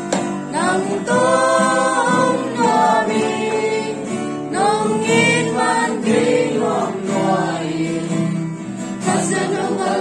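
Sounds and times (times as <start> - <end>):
group singing worship song: 0.0 - 10.0.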